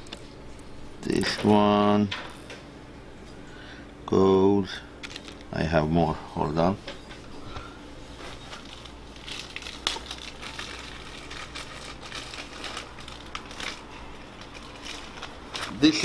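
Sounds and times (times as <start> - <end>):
small metal parts rustling: 5.0 - 5.5, 8.2 - 16.0.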